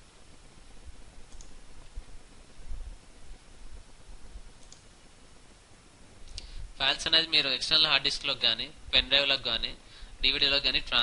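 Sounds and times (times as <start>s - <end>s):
background hiss and rumble: 0.0s - 11.0s
computer mouse click: 1.3s - 1.6s, 4.6s - 4.9s.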